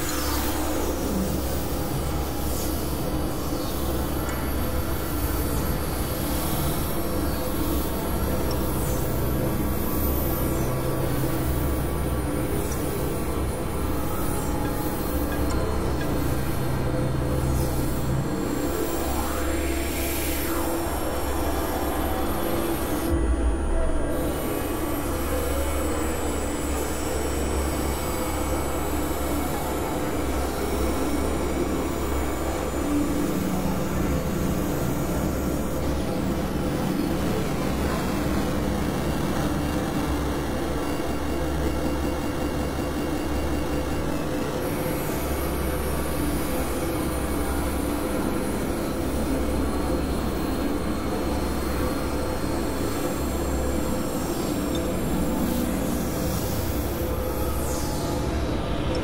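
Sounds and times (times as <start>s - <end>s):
synthesizer noise drone: 0.0s - 59.0s.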